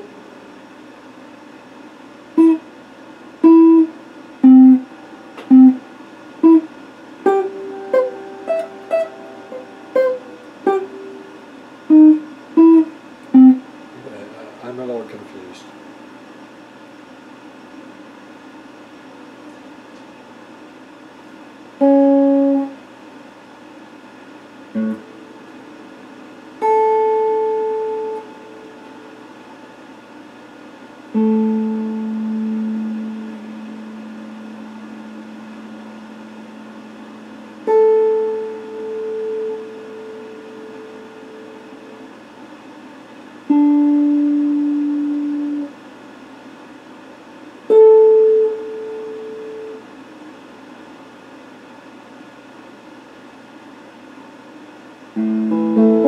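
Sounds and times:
electric guitar plucked notes: 0.0s - 0.2s, 2.4s - 2.6s, 3.4s - 13.8s, 21.8s - 22.8s, 24.8s - 25.5s, 26.6s - 29.2s, 31.1s - 42.0s, 43.5s - 45.7s, 47.7s - 49.8s, 55.2s - 56.0s.

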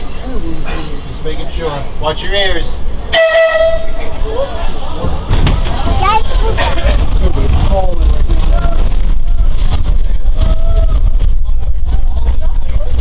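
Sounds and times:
subway car rumbling on rails: 0.0s - 13.0s.

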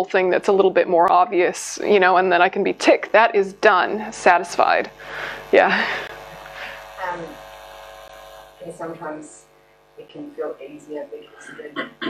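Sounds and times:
electrical mains hum: 0.0s - 12.0s
woman saying um: 7.0s - 7.4s, 8.6s - 9.4s, 10.0s - 12.0s.

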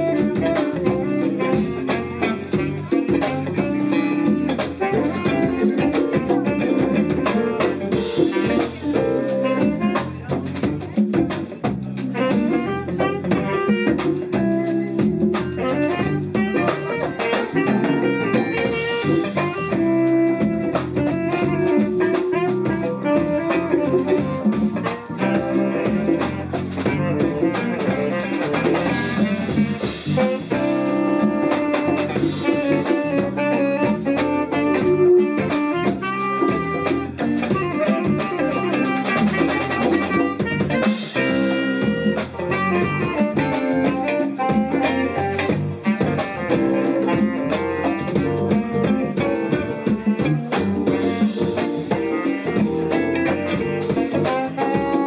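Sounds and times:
drum kit: 0.0s - 55.0s
electric bass: 0.0s - 55.0s
guitar: 0.0s - 55.0s
saxophone melody: 0.0s - 55.0s.

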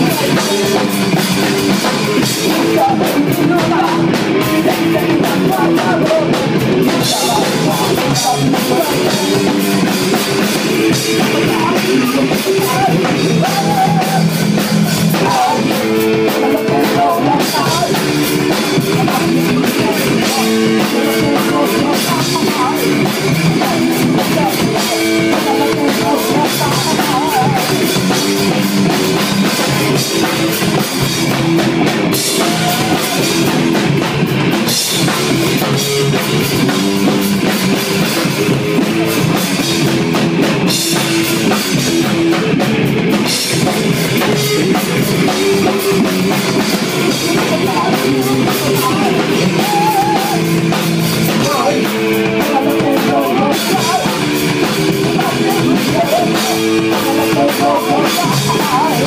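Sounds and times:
drum kit with cymbal hits: 0.0s - 59.0s
electric guitar riffing: 0.0s - 59.0s.

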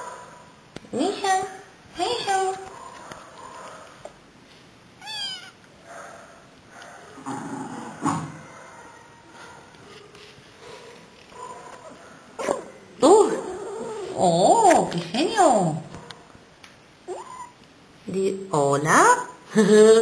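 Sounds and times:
cat vocalising while eating: 5.0s - 5.6s.

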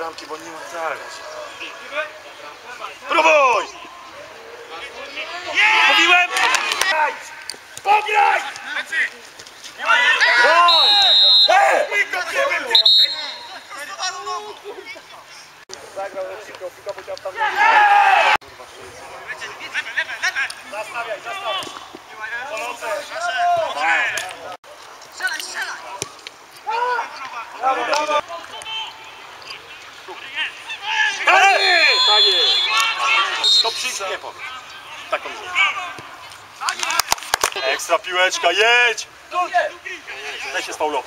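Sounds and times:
voices calling out: 0.0s - 41.0s
people shouting: 3.0s - 8.9s, 9.8s - 14.4s, 17.3s - 18.4s, 26.6s - 29.2s, 30.2s - 36.0s.

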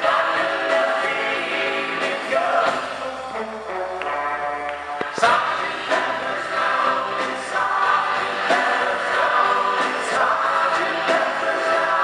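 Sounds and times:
voices singing together: 0.0s - 3.1s, 5.1s - 12.0s
live rock band playing: 0.0s - 12.0s.

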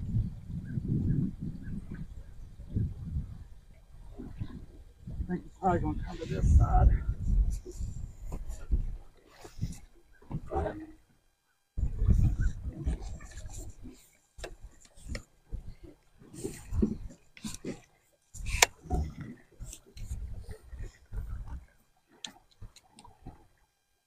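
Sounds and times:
wind buffeting microphone: 0.0s - 11.0s, 11.8s - 14.0s, 18.4s - 21.8s.

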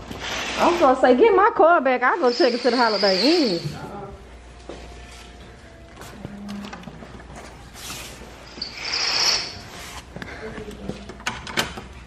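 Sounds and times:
high-pitched scraping hiss: 2.1s - 4.0s, 7.8s - 10.1s.

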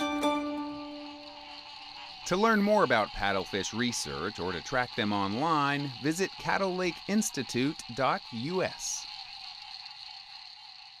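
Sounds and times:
low steady drone: 0.0s - 3.0s
high insect chorus: 0.0s - 11.0s.

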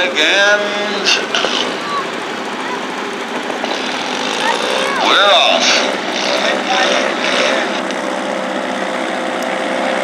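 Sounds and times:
small tractor engine running roughly: 0.0s - 10.0s.

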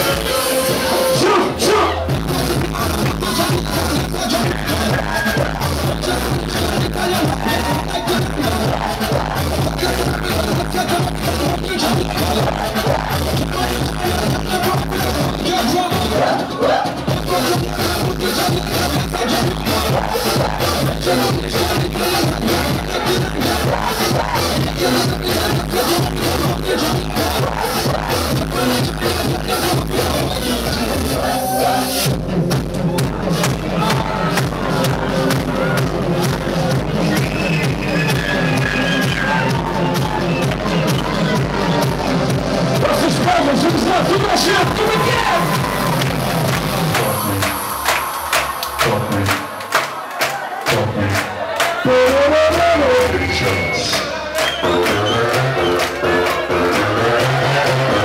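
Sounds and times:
crowd voices: 0.0s - 58.0s
loud electronic dance music: 0.0s - 58.0s.

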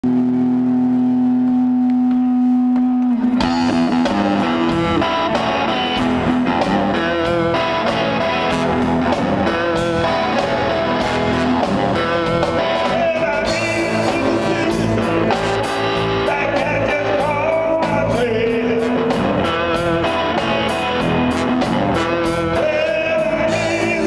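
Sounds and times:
blues band playing live: 0.1s - 24.0s.

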